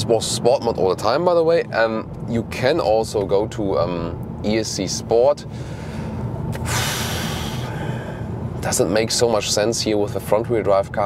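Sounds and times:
car cabin engine drone: 0.0s - 11.0s.

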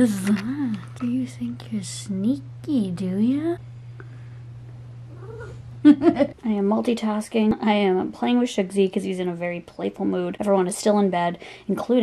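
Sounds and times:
faint low hum: 0.0s - 12.0s
woman laughing: 5.8s - 6.4s.

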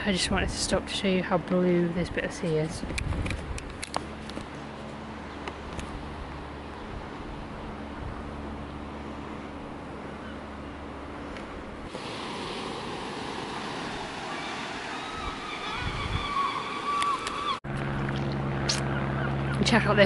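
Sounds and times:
wind: 0.0s - 20.0s
surf washing: 11.2s - 17.6s.

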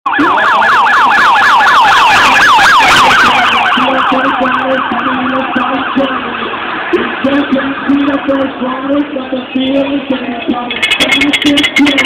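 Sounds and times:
vehicle siren yelping: 0.1s - 12.0s.

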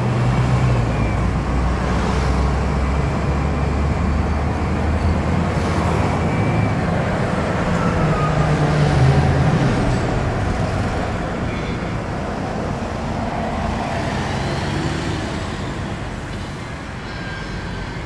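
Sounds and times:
road traffic noise: 0.0s - 18.0s.

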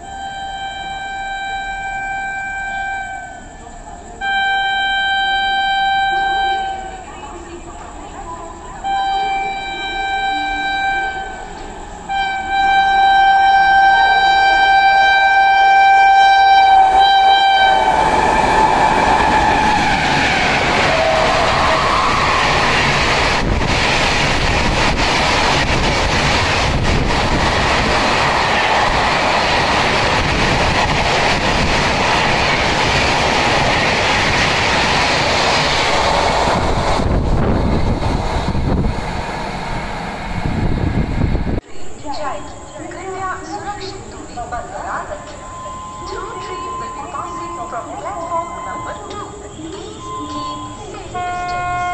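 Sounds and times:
train horn blast: 0.0s - 7.1s, 8.8s - 23.6s, 45.3s - 51.9s
train passing at high speed: 0.0s - 51.9s
wheels clacking on rails: 17.7s - 40.0s.

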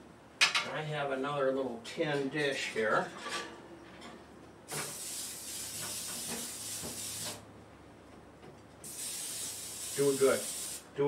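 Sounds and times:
aerosol spray hissing onto metal tin: 4.7s - 7.4s, 8.8s - 10.8s.

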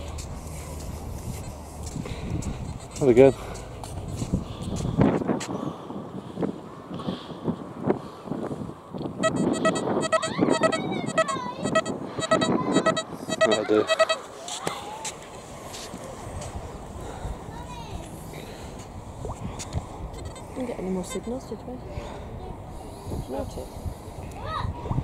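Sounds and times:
metal detector beeps: 9.2s - 14.3s.

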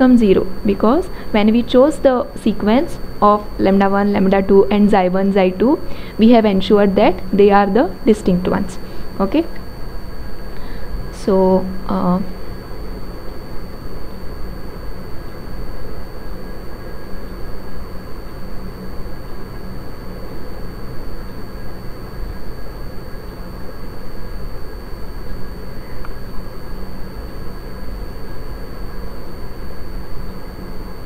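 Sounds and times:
faint high-pitched whine: 0.0s - 31.0s
low rumble and hiss: 0.0s - 31.0s.

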